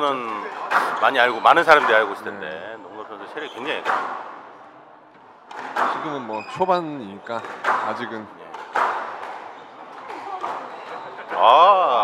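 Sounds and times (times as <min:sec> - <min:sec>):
squash ball knocks: 0:00.1 - 0:02.4, 0:03.8 - 0:04.4, 0:05.5 - 0:06.1, 0:07.4 - 0:11.4.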